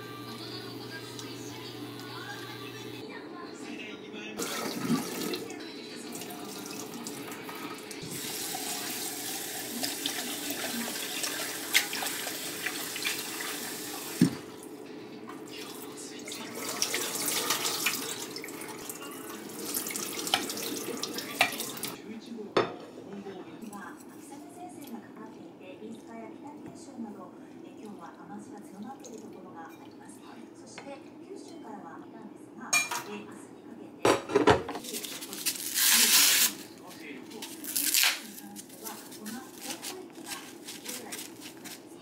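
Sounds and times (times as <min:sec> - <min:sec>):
tap water running into pot: 0:04.4 - 0:14.6, 0:15.4 - 0:22.0
metal pot clinking: 0:32.8 - 0:33.1.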